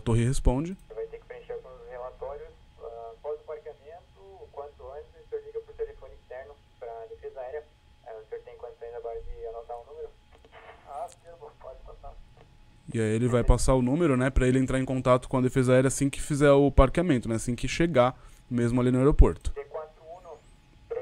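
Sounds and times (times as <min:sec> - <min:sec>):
person speaking over radio: 0:19.4 - 0:21.0.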